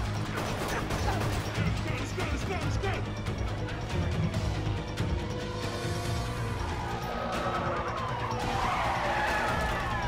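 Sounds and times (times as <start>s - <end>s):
film music score: 0.0s - 10.0s.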